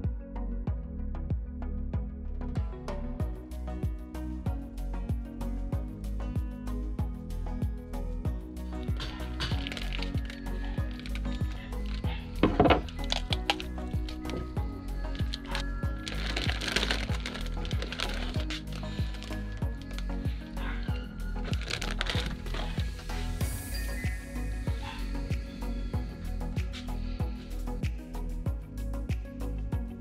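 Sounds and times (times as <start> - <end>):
background music with steady beat: 0.0 - 30.0.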